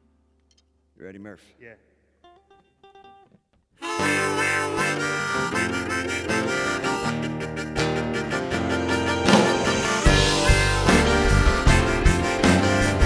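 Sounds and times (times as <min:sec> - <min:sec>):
faint plucked guitar notes: 0:02.2 - 0:13.0
harmonica-like lead melody: 0:02.2 - 0:13.0
live rock band playing: 0:03.8 - 0:13.0.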